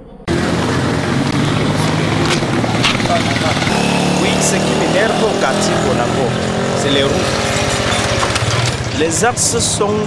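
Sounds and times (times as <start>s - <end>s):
people's voices: 0.0s - 10.0s
motorcycle engine running: 0.3s - 10.0s.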